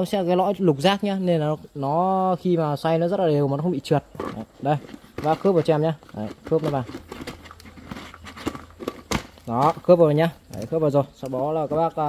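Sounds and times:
faint plastic rubbing: 4.0 - 12.0.

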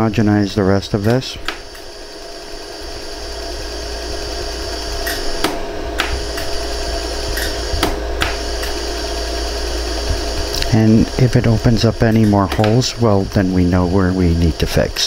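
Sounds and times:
machine hum: 0.0 - 15.0
laser welder clicks: 0.9 - 1.9, 4.6 - 8.9, 10.0 - 13.3.

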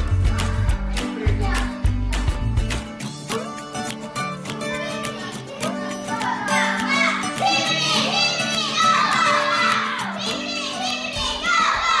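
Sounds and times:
background music with guitar: 0.0 - 12.0
children shouting excitedly: 4.6 - 12.0.

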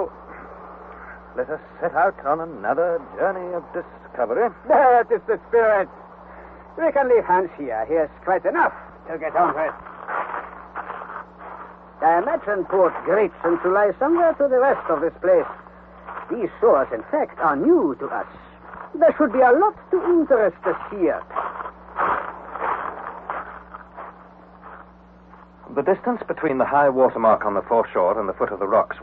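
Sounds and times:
faint steady hum: 0.0 - 29.0
footsteps crunching on stones: 8.2 - 25.8.

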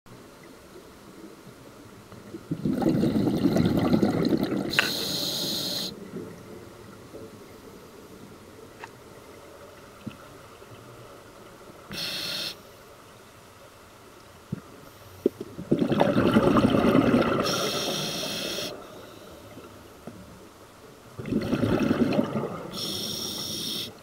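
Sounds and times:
bubbling underwater exhalation: 2.5 - 4.8, 15.6 - 17.8, 21.2 - 22.8
regulator inhalation hiss: 4.7 - 6.0, 11.9 - 12.7, 17.5 - 19.4, 22.8 - 24.0.

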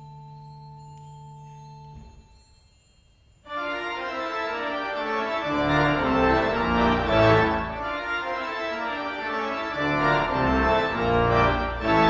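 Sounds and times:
church organ chords: 3.5 - 12.0.

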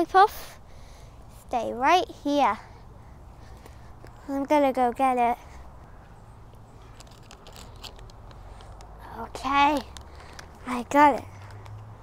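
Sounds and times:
leaves brushing: 6.6 - 8.9.

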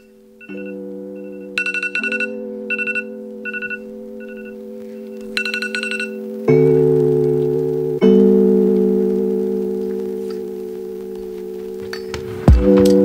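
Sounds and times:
phone alarm beeping: 0.0 - 6.2
organ-like music chords: 0.0 - 13.0.

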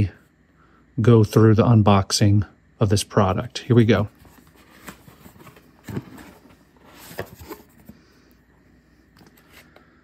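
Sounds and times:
cardboard rustle: 3.9 - 8.0.

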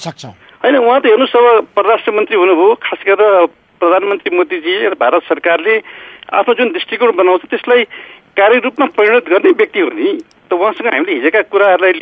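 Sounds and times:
man speaking over telephone: 0.0 - 5.8.

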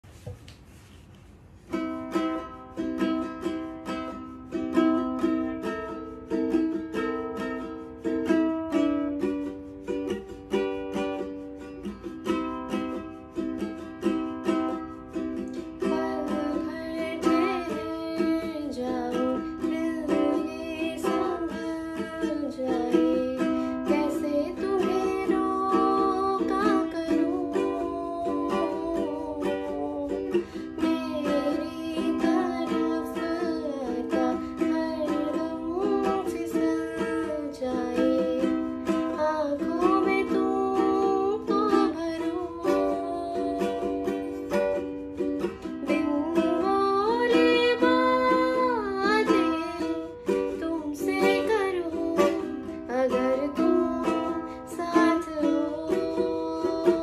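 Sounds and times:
ukulele strumming chords: 1.6 - 57.0
woman singing: 12.0 - 57.0.

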